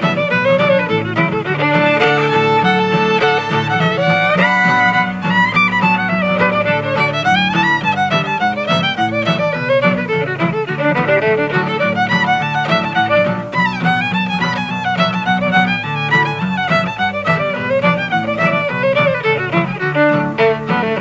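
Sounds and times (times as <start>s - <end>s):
acoustic guitars strumming chords: 0.0s - 21.0s
fiddle playing fast runs: 0.0s - 21.0s.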